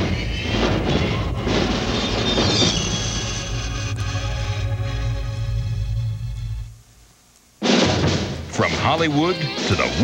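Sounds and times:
music: 0:00.0 - 0:06.8, 0:07.6 - 0:10.0.

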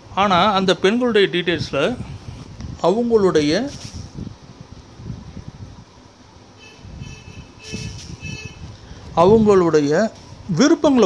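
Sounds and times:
short high-pitched tones: 0:06.6 - 0:08.6.

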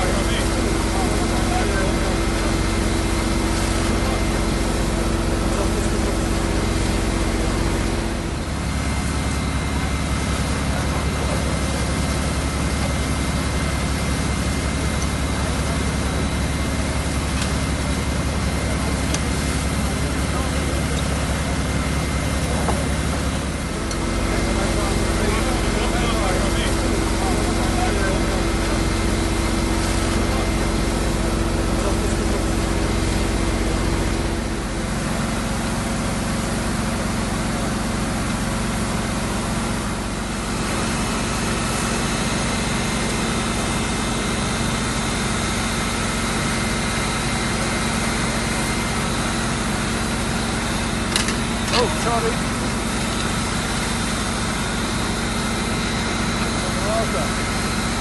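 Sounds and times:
fire engine droning: 0:00.0 - 0:58.0.

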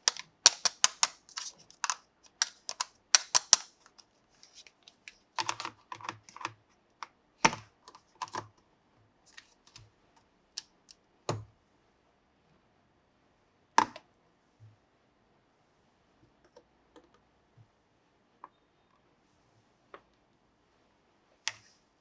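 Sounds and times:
plastic toy pieces clicking: 0:00.0 - 0:04.0.

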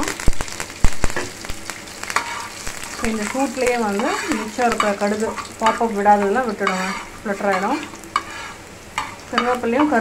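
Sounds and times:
sharp pops and crackles: 0:00.0 - 0:05.0
hot oil sizzling in a pan: 0:00.0 - 0:10.0.

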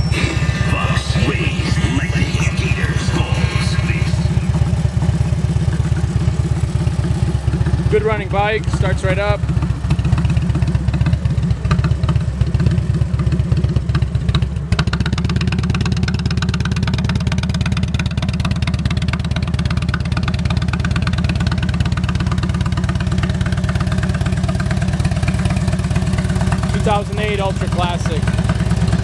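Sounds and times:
motorcycle engine idling: 0:00.0 - 0:29.0.

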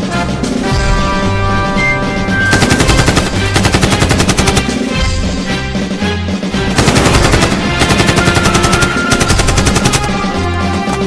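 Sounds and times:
background music: 0:00.0 - 0:11.0
machine-gun fire: 0:02.5 - 0:04.8, 0:06.7 - 0:10.2.

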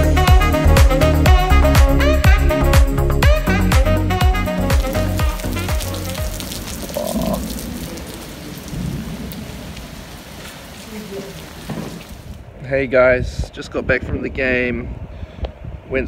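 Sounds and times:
rain falling steadily: 0:03.9 - 0:12.6.

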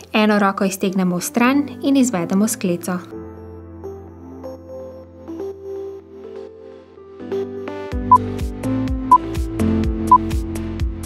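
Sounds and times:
soft synth melody: 0:03.1 - 0:09.3.

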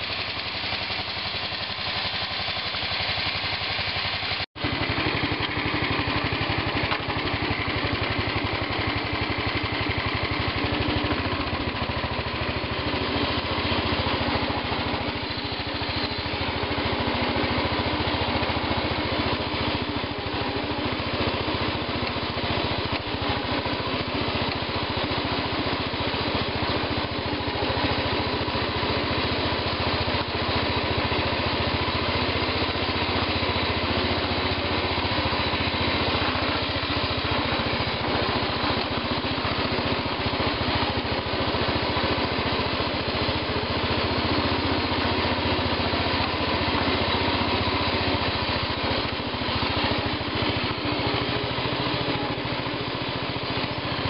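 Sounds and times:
garden tractor engine running: 0:00.0 - 0:54.0.

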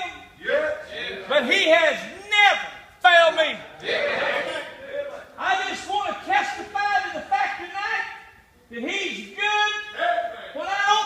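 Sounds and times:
man calling out in a hall: 0:00.0 - 0:11.0.

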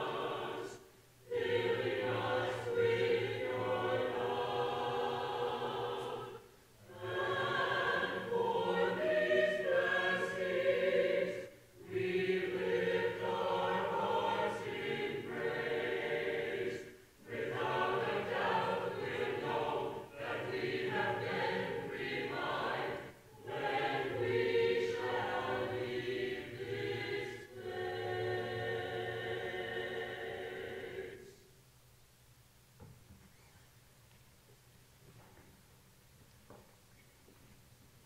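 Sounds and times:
church choir singing: 0:00.0 - 0:31.5.

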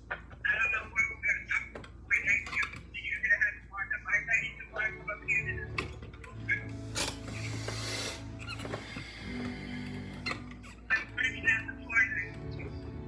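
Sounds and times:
electronic keyboard low notes: 0:06.4 - 0:13.0.

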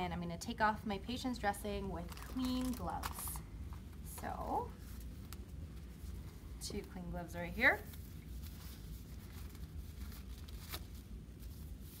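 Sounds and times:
gloves rustling: 0:01.6 - 0:12.0.

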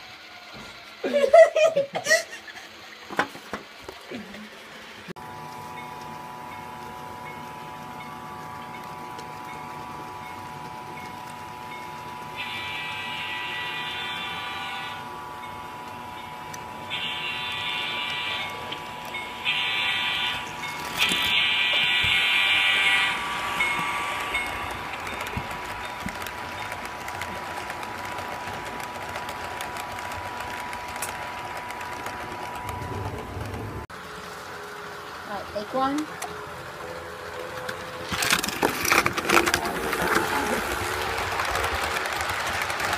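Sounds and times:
locomotive hum: 0:00.0 - 0:42.9
model train horn: 0:12.4 - 0:15.2, 0:16.9 - 0:18.7, 0:19.4 - 0:20.5.

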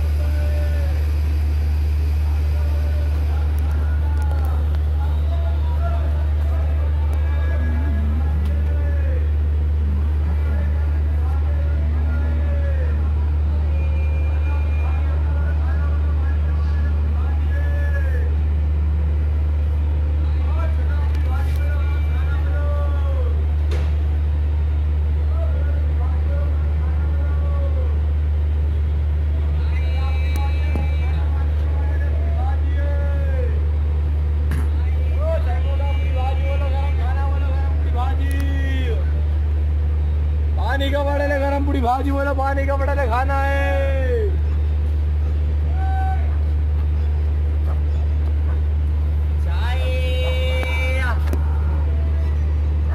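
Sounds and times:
loud low rumble: 0:00.0 - 0:13.7
voices calling out: 0:00.0 - 0:18.5, 0:25.1 - 0:52.9.

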